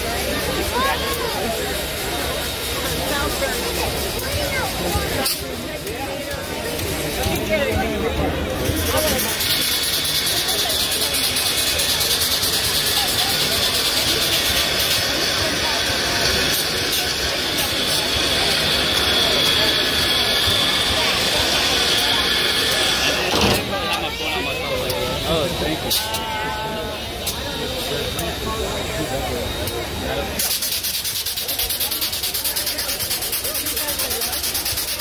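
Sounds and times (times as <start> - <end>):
crowd chatter: 0.0 - 35.0
steam locomotive venting steam: 0.0 - 35.0.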